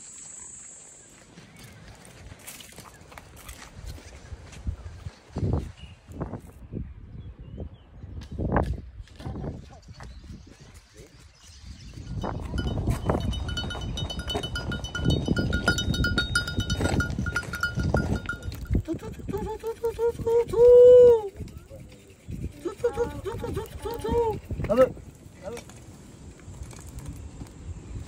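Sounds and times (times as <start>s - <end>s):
footsteps on stony ground: 1.0s - 6.4s, 9.8s - 19.8s
goat bells clinking: 12.0s - 20.2s
person singing a drawn-out call: 18.7s - 21.7s, 22.6s - 24.5s.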